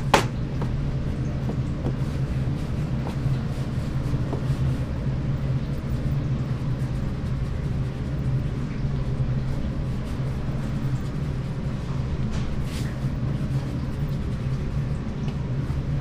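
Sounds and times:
low mechanical hum: 0:00.0 - 0:16.0.

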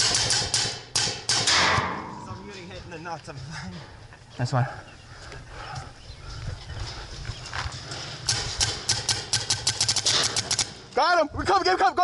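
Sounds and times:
paintball markers firing: 0:08.3 - 0:10.8.

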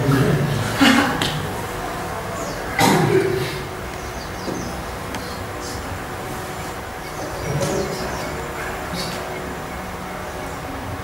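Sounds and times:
room rumble and hum: 0:00.0 - 0:11.0.

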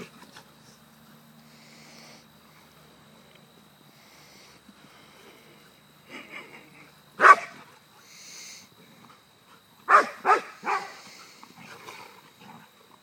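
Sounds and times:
dog barking: 0:07.2 - 0:07.6, 0:09.9 - 0:11.0.

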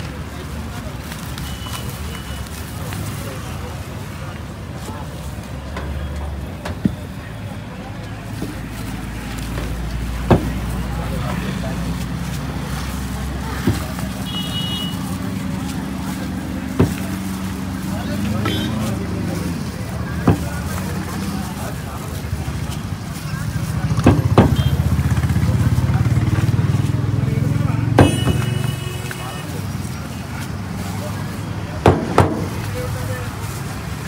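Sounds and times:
vehicle engine humming: 0:00.0 - 0:34.0
sharp knocks: 0:24.0 - 0:24.6, 0:31.8 - 0:32.6.

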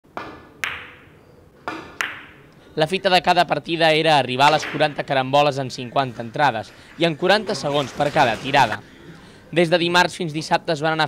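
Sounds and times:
billiard balls clicking: 0:01.8 - 0:02.5, 0:04.4 - 0:05.2.

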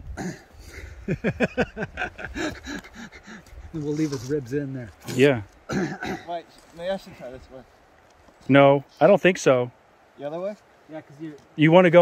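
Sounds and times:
man laughing: 0:00.7 - 0:03.5.

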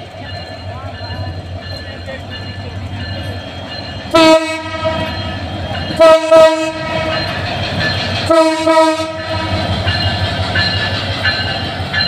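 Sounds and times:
diesel locomotive engine rumble: 0:00.0 - 0:12.0
train horn blast: 0:04.1 - 0:05.2, 0:06.0 - 0:07.2, 0:08.3 - 0:09.7.

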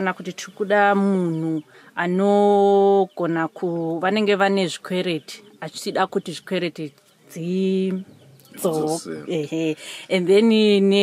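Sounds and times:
man speaking in sing-song voice: 0:08.6 - 0:09.3.

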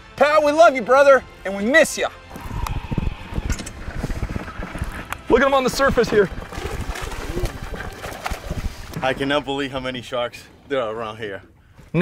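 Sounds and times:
wind buffeting microphone: 0:02.3 - 0:10.3
water washing: 0:03.1 - 0:10.6.

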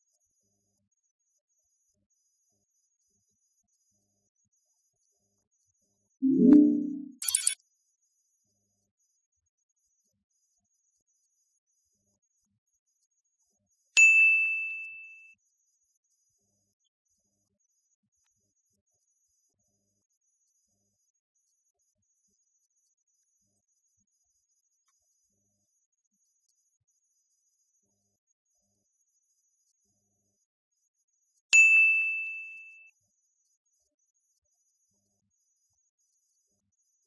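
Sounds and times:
bright bell-like ding: 0:06.2 - 0:07.6, 0:31.8 - 0:32.8.

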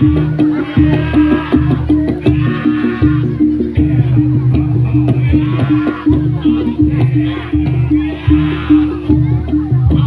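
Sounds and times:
drum beat: 0:00.0 - 0:10.0
gamelan music: 0:00.0 - 0:10.0.

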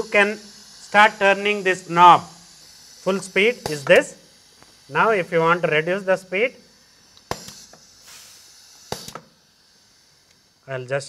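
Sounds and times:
compressed air hiss: 0:00.0 - 0:11.0
valve clicks: 0:00.1 - 0:04.9, 0:06.6 - 0:10.5.

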